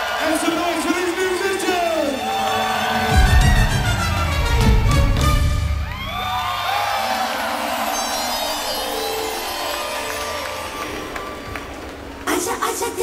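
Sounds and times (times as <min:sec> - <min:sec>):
crowd cheering and whooping: 0:00.0 - 0:12.3
electronic dance music: 0:01.3 - 0:05.9.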